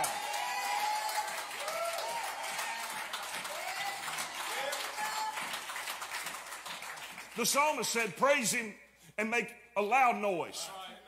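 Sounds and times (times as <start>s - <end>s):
people shouting praise: 0.0s - 5.4s
congregation applauding: 0.0s - 8.0s.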